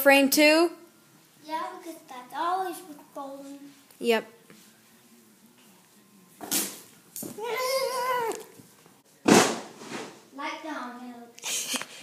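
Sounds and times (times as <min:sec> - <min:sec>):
child crying: 0:07.4 - 0:08.4.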